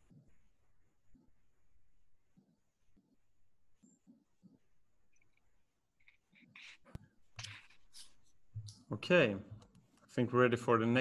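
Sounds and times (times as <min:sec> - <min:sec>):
man speaking: 0:08.8 - 0:11.0.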